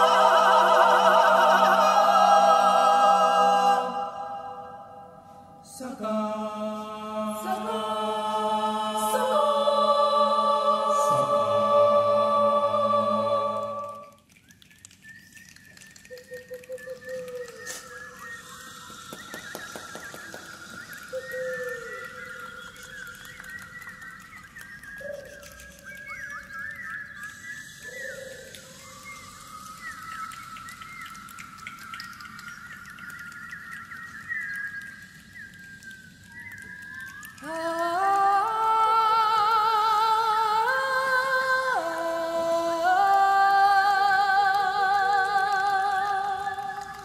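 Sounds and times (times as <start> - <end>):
bird whistling: 14.4 - 38.5
birds chirping and trilling: 15.2 - 37.4.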